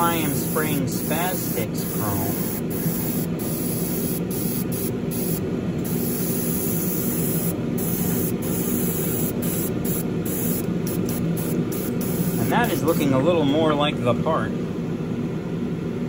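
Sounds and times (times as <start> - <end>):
airbrush hissing: 0.0 - 12.9
spray booth hum: 0.0 - 13.5.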